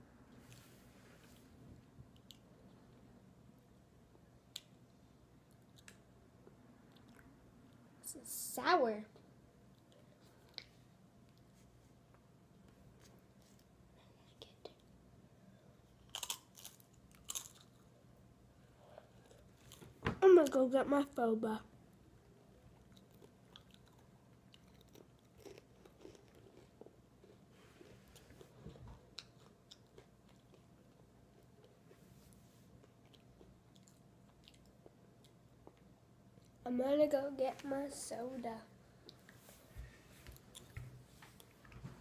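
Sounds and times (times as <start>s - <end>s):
tortilla chip crunching: 16.0s - 17.9s
chewing chips: 16.0s - 18.0s, 22.6s - 31.8s.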